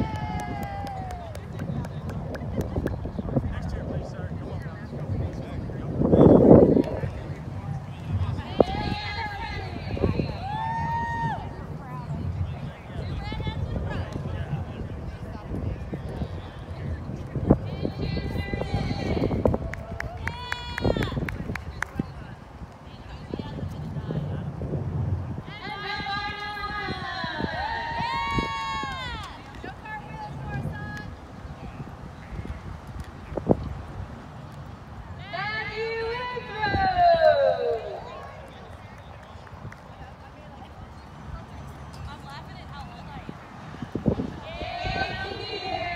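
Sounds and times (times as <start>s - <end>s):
low rumble on microphone: 0.0s - 37.2s
distant indistinct voices: 0.0s - 45.9s.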